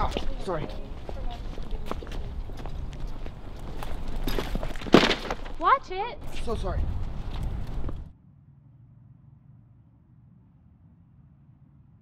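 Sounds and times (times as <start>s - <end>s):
people talking: 0.0s - 2.4s
footsteps on paving: 0.0s - 8.1s.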